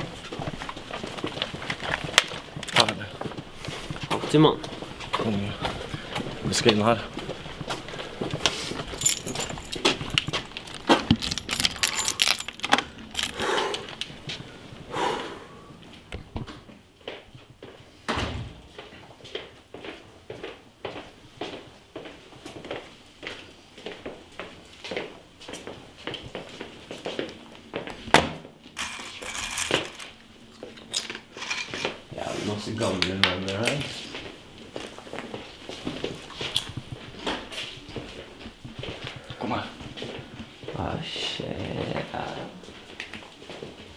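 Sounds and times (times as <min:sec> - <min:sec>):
keys jangling: 0:08.8 - 0:13.9, 0:28.8 - 0:30.2, 0:30.8 - 0:31.9
handling clicks and knocks: 0:08.8 - 0:14.1, 0:28.8 - 0:30.2.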